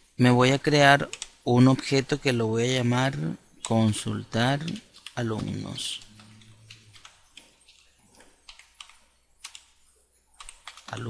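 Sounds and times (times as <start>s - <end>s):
computer keyboard keys clicking: 1.1s - 1.3s, 4.6s - 9.7s, 10.4s - 11.0s.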